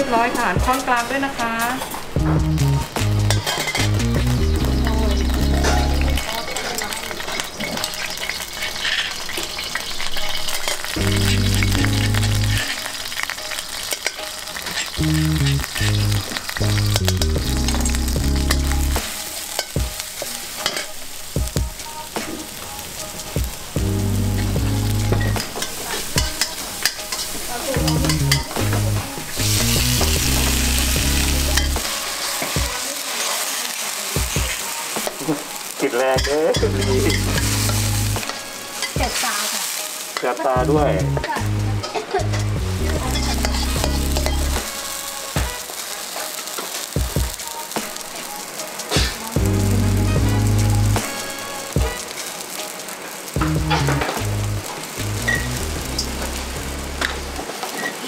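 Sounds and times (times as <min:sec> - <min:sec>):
oil sizzling in a wok: 0:00.0 - 0:58.0
metal spatula scraping a pan: 0:03.3 - 0:04.1, 0:04.8 - 0:21.2, 0:25.1 - 0:40.4, 0:41.3 - 0:47.0.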